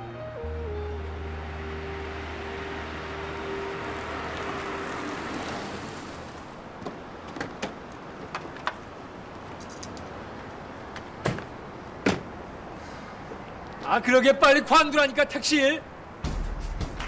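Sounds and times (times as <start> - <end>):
background music with held notes: 0.0 - 5.4, 16.2 - 17.0
car driving up and stopping: 0.8 - 6.6.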